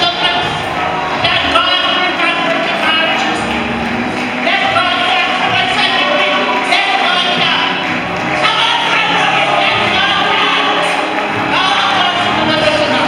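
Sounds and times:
congregation singing worship music: 0:00.0 - 0:13.0
keyboard accompaniment: 0:00.0 - 0:13.0.

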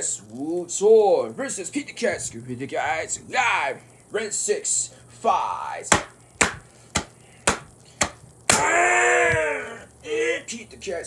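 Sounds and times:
man yelling: 0:03.3 - 0:03.8, 0:08.5 - 0:10.6
sharp smacks: 0:05.9 - 0:08.7.

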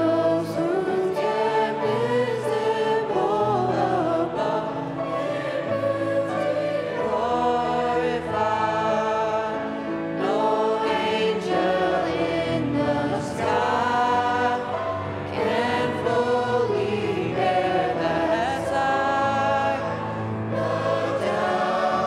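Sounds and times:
vocal ensemble singing in harmony: 0:00.0 - 0:22.0.

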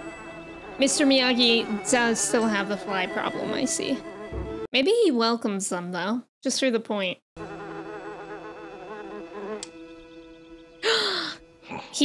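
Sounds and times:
housefly buzzing: 0:07.4 - 0:10.8.

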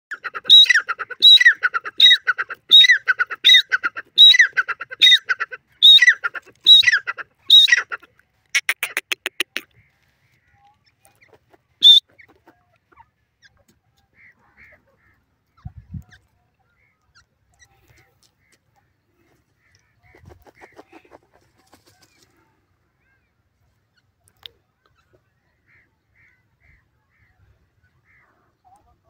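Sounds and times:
clipped bird notes: 0:08.5 - 0:09.9, 0:10.5 - 0:12.4
francolin calling: 0:08.6 - 0:09.7.

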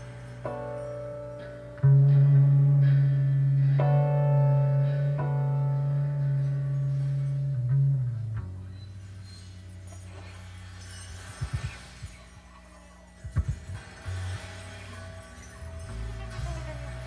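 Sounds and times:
sustained guitar tones: 0:00.0 - 0:10.2.

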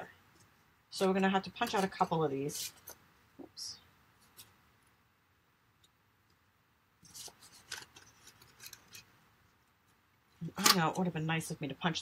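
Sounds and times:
paper rustling: 0:07.0 - 0:09.1.

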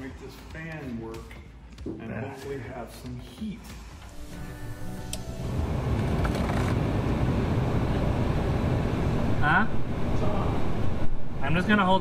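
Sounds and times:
car heater fan blowing air: 0:04.2 - 0:11.4.

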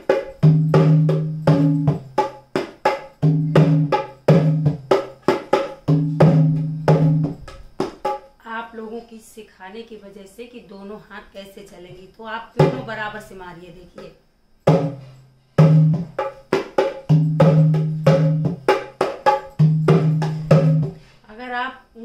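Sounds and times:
dholak drum rhythm: 0:00.0 - 0:08.4, 0:12.6 - 0:13.3, 0:13.9 - 0:21.0.

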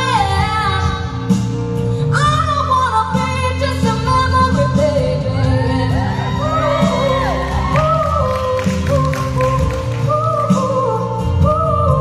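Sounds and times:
musical accompaniment: 0:00.0 - 0:12.0
woman singing pop ballad: 0:00.0 - 0:12.0.

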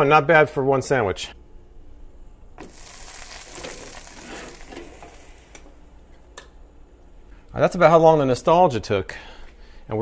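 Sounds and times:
butter sizzling: 0:02.6 - 0:05.8.

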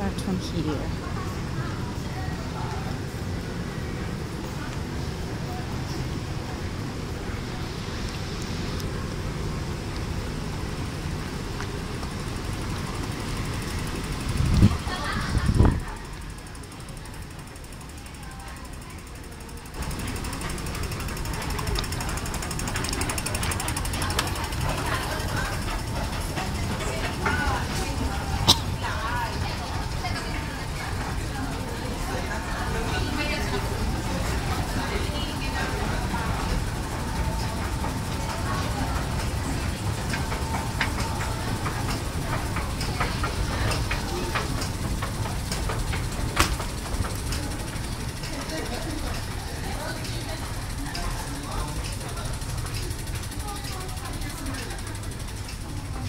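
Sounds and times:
escalator steps rumbling and rattling: 0:00.0 - 0:56.0
passersby voices: 0:00.0 - 0:56.0.

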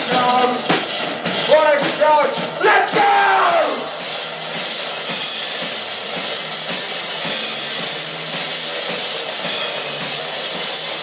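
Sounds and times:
drum kit with crashing cymbals: 0:00.0 - 0:11.0
electric guitar: 0:00.0 - 0:11.0.

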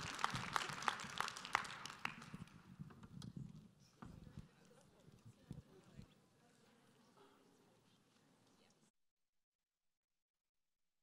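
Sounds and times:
audience applause: 0:00.0 - 0:02.5.

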